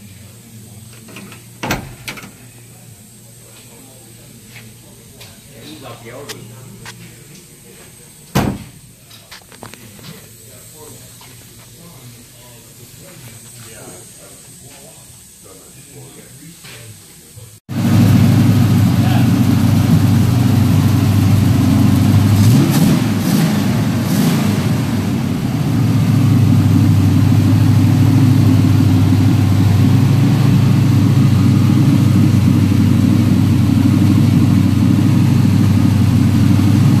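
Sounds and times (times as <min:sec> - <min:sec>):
car engine idling: 0:17.7 - 0:37.0.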